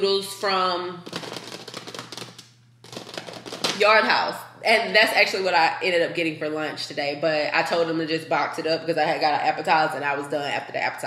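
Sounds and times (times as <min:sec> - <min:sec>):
plastic food packet crinkling: 0:01.0 - 0:03.8.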